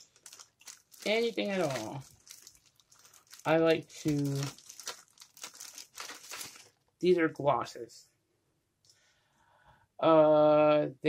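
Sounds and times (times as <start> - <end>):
plastic tubes crinkling: 0.0 - 7.2.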